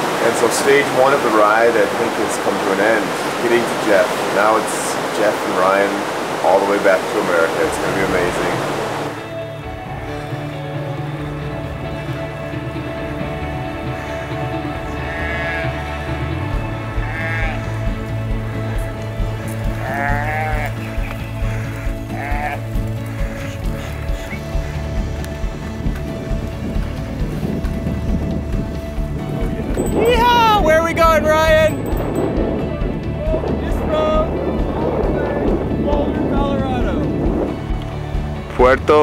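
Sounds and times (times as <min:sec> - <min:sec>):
background music with sustained tones: 0:00.0 - 0:39.0
livestock bleating: 0:09.6 - 0:10.5, 0:13.8 - 0:18.0, 0:19.4 - 0:25.7.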